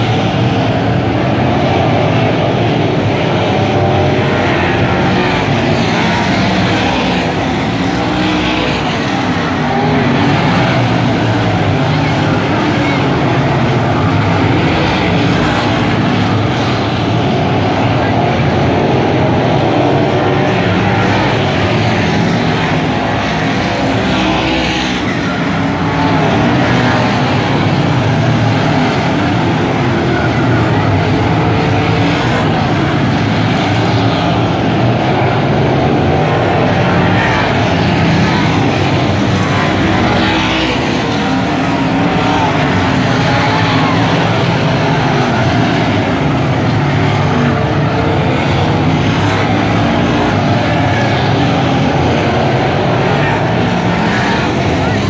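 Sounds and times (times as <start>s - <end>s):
race car engines roaring: 0.0s - 55.0s.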